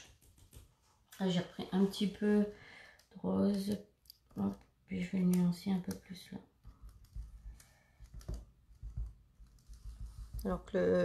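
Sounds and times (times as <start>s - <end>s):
sponge dabbing on glass: 6.6s - 10.8s.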